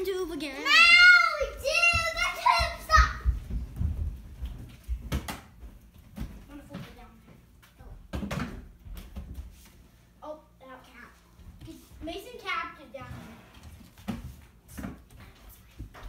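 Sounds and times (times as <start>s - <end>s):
child shouting: 0.2s - 3.3s
light knocks and thumps: 1.8s - 7.0s.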